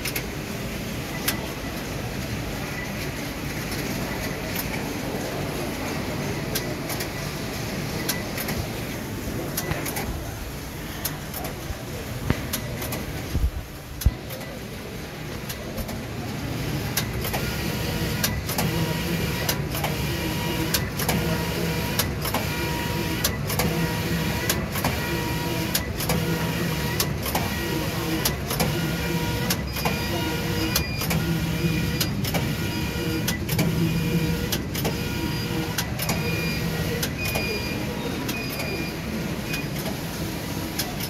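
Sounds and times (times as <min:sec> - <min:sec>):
sharp mechanical clicks: 0:09.5 - 0:10.3, 0:15.4 - 0:40.1.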